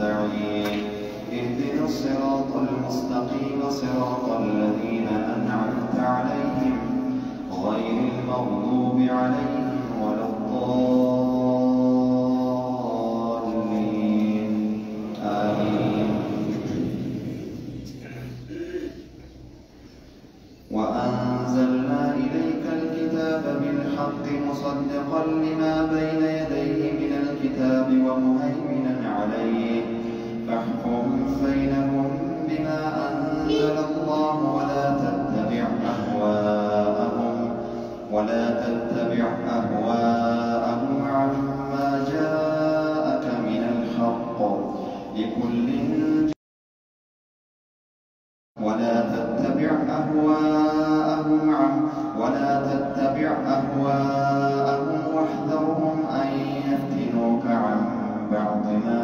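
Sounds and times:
man chanting melodically: 0:00.0 - 0:19.5, 0:20.4 - 0:46.4, 0:48.6 - 0:59.0.

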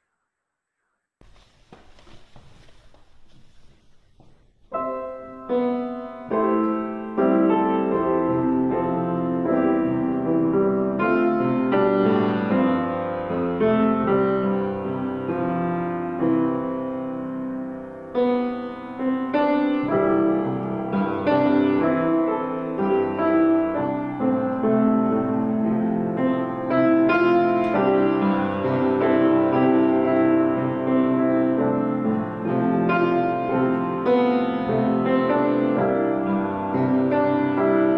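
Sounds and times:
grand piano chords: 0:03.1 - 0:37.9.

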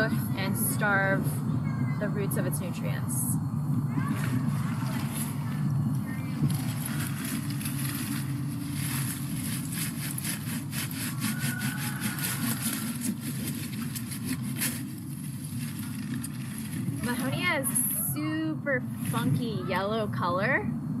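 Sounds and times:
hand saw cutting wood: 0:09.5 - 0:14.8.

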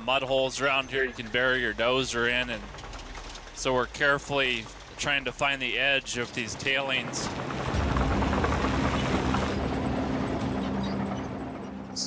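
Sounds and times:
bulldozer diesel engine droning: 0:00.0 - 0:12.0.

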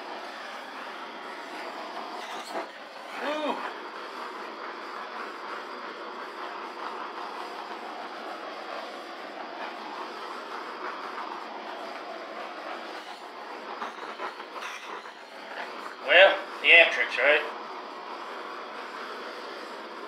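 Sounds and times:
torch flame hissing: 0:00.0 - 0:20.0.

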